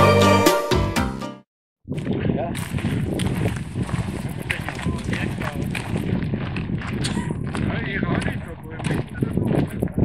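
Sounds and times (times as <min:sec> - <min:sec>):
footsteps crunching on gravel: 0:01.9 - 0:09.9
voices talking: 0:04.4 - 0:06.0.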